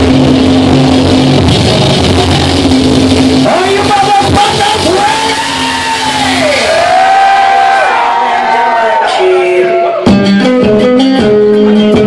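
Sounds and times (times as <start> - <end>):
long gliding high notes: 0.0 - 8.8
live rock band: 0.0 - 12.0.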